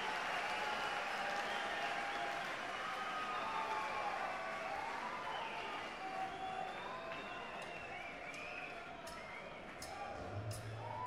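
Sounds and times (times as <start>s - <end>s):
crowd applauding: 0.0s - 10.2s
crowd cheering and whistling: 0.0s - 11.0s.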